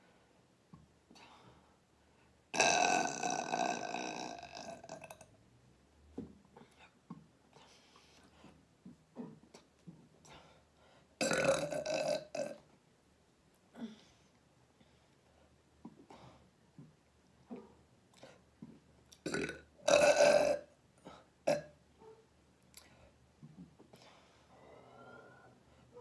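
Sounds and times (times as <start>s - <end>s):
woman burping loudly: 2.5s - 5.3s, 11.2s - 12.6s, 19.2s - 20.7s.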